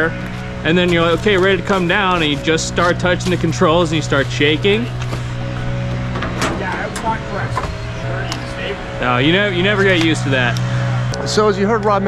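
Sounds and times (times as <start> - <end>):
faint voices: 0.0 - 12.0
truck engine idling: 0.0 - 12.0.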